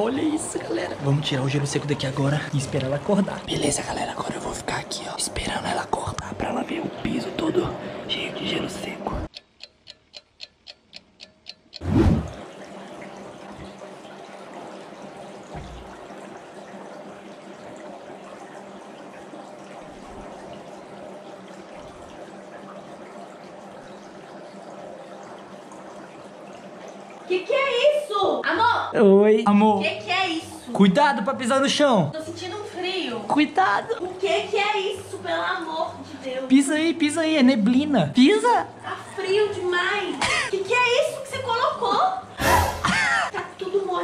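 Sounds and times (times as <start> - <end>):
person whispering: 3.6 - 9.3
even ticks: 9.3 - 11.9
dry ice bubbling in water: 11.6 - 28.5
loud hit: 42.4 - 43.0.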